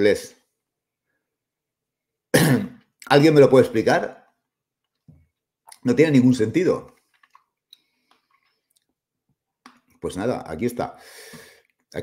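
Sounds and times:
man clearing throat: 2.4s - 2.9s.

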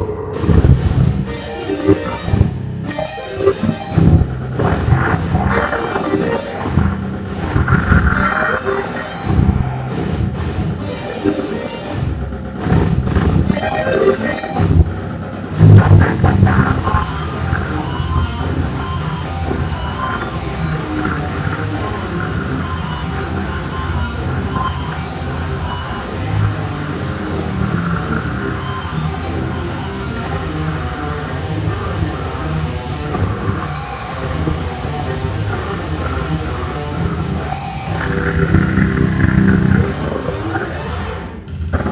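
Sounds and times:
electric guitar metal solo: 0.0s - 41.9s
loud band music: 0.4s - 40.4s.

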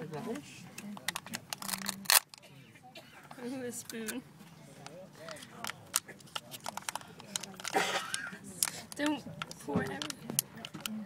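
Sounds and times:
plastic capsule clicks: 0.8s - 2.4s, 5.3s - 11.0s
foil lid crinkling: 1.1s - 2.4s.

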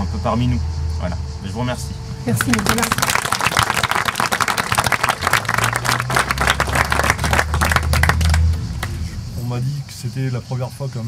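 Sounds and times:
crowd applauding: 2.3s - 9.1s.

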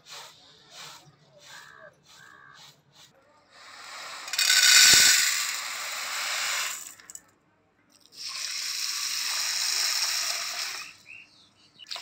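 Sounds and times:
grain pouring into metal pot: 4.0s - 7.2s
grain shaking in winnowing tray: 4.0s - 7.2s, 8.3s - 10.9s.

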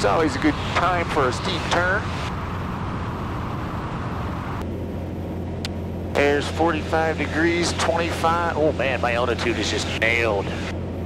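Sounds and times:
light aircraft engine droning: 0.0s - 11.0s.

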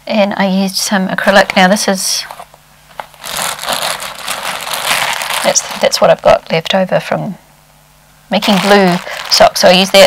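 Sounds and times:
plastic bag crinkling: 3.0s - 6.3s, 8.3s - 10.0s.

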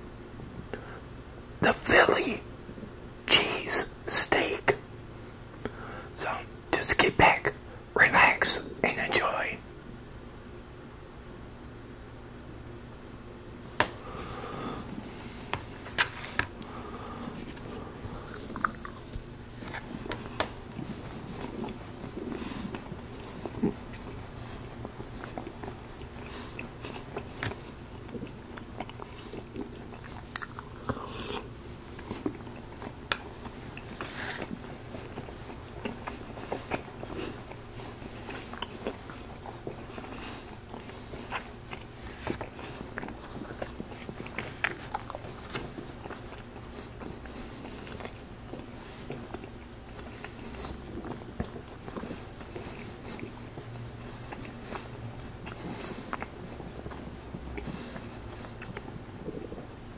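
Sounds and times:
steady low hum: 0.0s - 59.9s
close chewing and biting: 14.0s - 59.7s.

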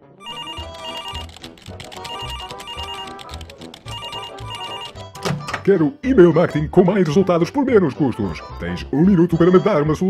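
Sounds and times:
telephone double rings: 0.2s - 1.3s, 2.0s - 3.2s, 3.9s - 5.0s.

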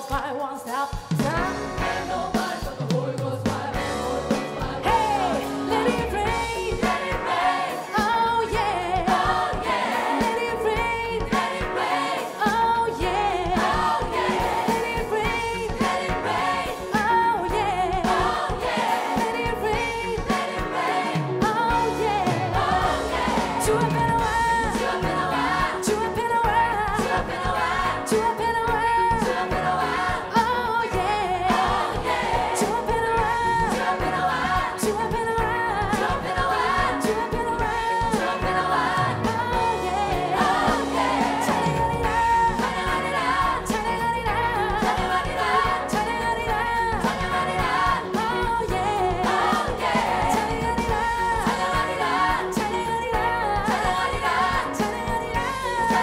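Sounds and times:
lead vocalists singing: 0.0s - 56.0s
band playing steady beat: 0.1s - 56.0s
choir singing: 1.7s - 56.0s.

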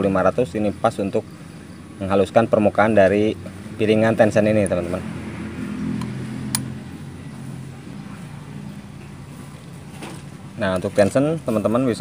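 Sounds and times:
sharp click: 6.0s - 6.8s.

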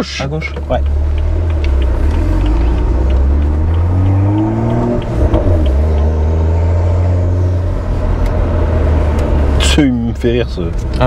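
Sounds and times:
car engine drone from inside: 0.0s - 11.0s.

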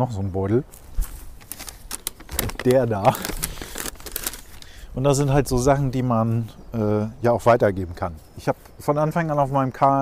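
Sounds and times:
paper bag crinkling: 0.8s - 4.8s.

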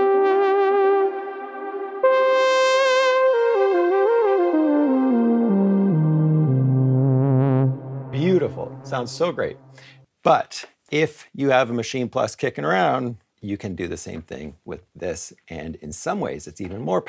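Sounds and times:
synthesizer lead with delay: 0.0s - 9.8s.

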